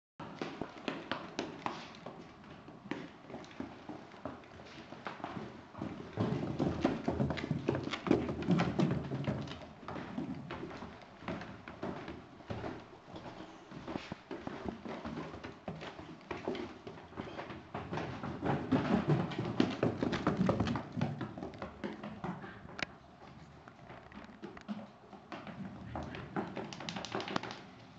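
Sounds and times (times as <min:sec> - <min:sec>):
dog shoes tapping on stairs: 0:00.2 - 0:27.9.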